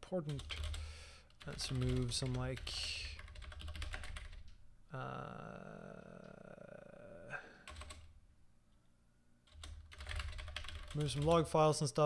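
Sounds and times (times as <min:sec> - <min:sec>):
computer keyboard typing: 0:00.3 - 0:04.6, 0:07.6 - 0:08.1, 0:09.5 - 0:11.5
person saying uh: 0:04.9 - 0:07.6.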